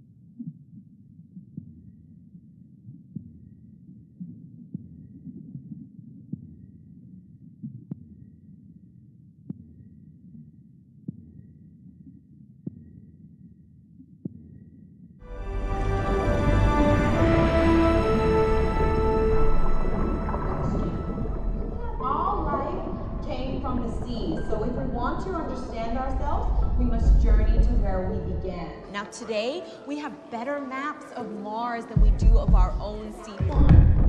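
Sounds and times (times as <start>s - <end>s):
loud music: 15.2s - 23.5s
low rumble with soft pulse: 15.6s - 28.9s.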